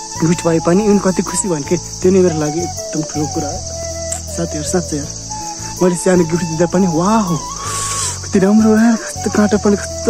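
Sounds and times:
insects chirring: 0.0s - 10.0s
man talking: 0.2s - 3.6s, 4.2s - 5.2s, 5.8s - 7.5s, 8.3s - 10.0s.

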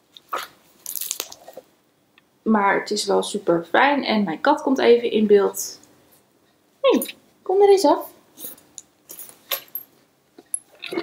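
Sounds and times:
rustling handling noises: 8.4s - 11.0s.

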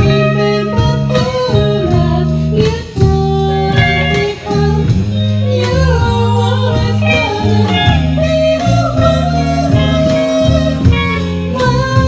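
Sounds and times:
drum kit: 0.0s - 12.0s
electric bass: 0.0s - 12.0s
electric guitar: 0.0s - 12.0s
people singing: 0.0s - 12.0s.

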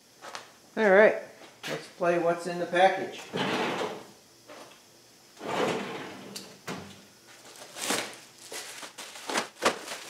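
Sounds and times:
plastic bag rustling and crinkling: 7.3s - 10.0s.

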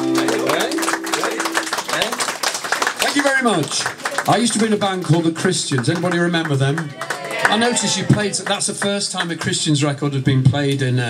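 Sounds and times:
acoustic guitar chord ringing: 0.0s - 2.1s
audience clapping: 0.0s - 10.0s.

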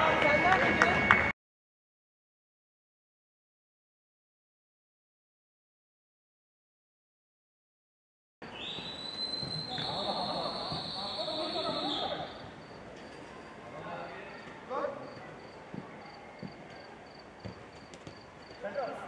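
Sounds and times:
players calling out: 8.8s - 12.6s.

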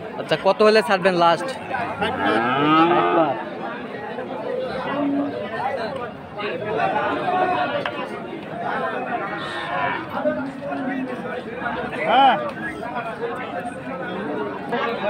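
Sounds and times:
crowd chatter: 0.0s - 15.0s
men talking: 0.1s - 15.0s
cow mooing: 1.9s - 3.4s.

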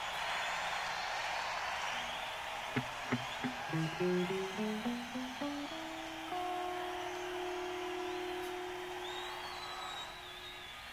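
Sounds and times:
guitar note ringing: 2.8s - 7.8s.

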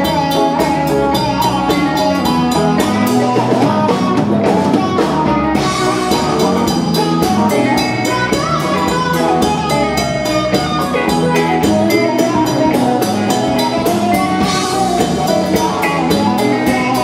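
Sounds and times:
bass guitar: 0.0s - 17.0s
drum kit steady beat: 0.0s - 17.0s
electric and acoustic guitars: 0.0s - 17.0s.

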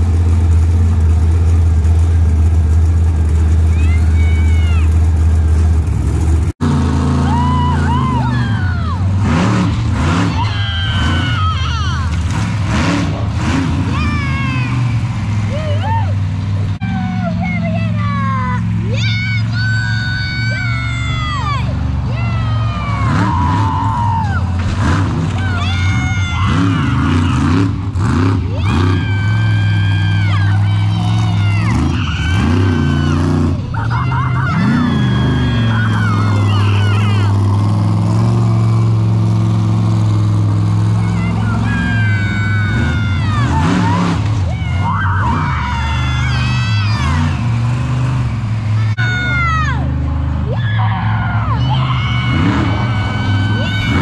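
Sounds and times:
vehicle engine idling: 0.0s - 54.0s.

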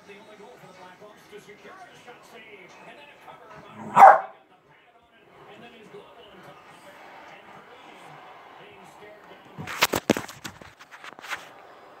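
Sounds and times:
dog barking: 3.8s - 4.4s.

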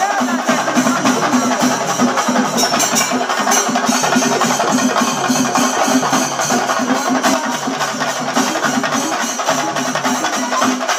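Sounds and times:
cymbals ringing: 0.0s - 10.9s
drums beaten fast: 0.0s - 10.9s.

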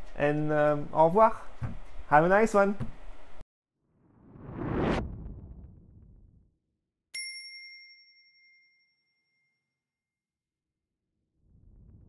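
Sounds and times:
bell-like ding: 7.2s - 9.8s.

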